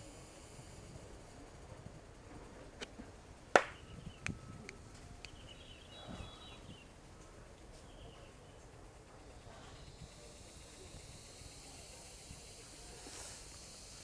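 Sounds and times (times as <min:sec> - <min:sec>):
sharp hand claps: 0:03.6 - 0:03.8.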